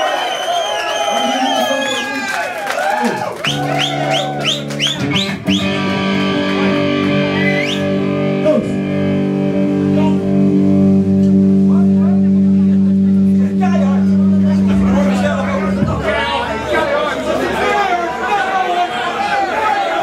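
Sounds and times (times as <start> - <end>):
distorted electric guitar: 3.5 - 16.6
heavy metal band playing: 3.5 - 17.8.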